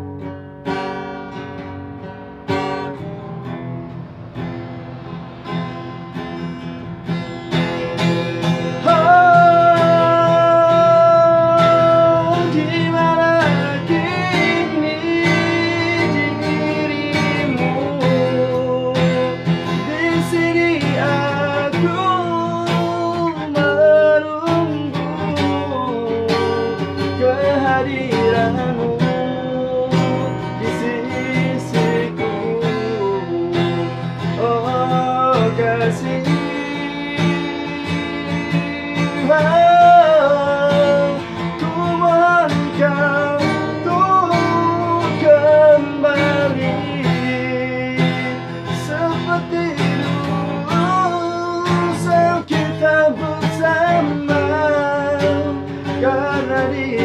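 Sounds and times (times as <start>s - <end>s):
acoustic guitar strumming: 0.0s - 57.0s
man singing a ballad: 8.5s - 57.0s.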